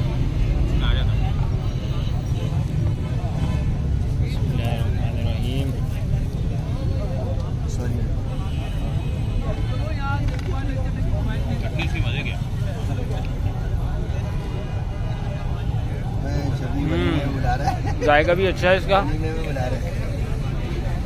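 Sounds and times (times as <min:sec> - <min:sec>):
people talking: 0:00.0 - 0:21.0.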